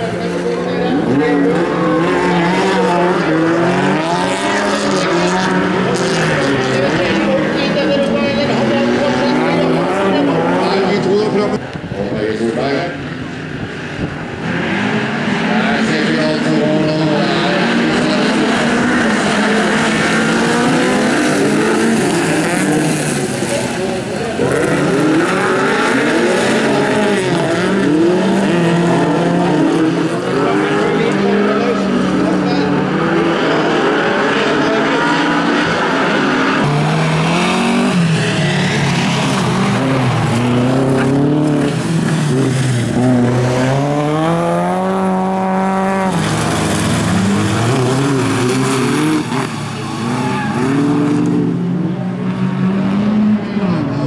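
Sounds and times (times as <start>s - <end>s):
racing car engines revving: 0.0s - 54.0s.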